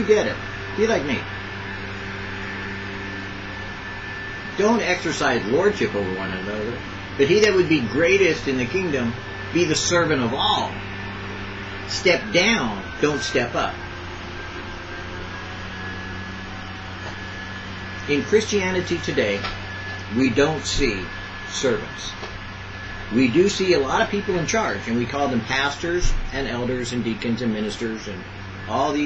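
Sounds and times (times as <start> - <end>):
low steady hum: 0.0 - 29.0.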